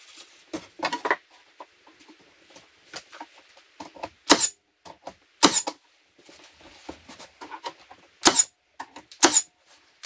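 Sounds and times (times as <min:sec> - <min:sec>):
nailer firing shots: 0:04.3 - 0:04.6, 0:05.4 - 0:05.7, 0:08.2 - 0:08.5, 0:09.2 - 0:09.5.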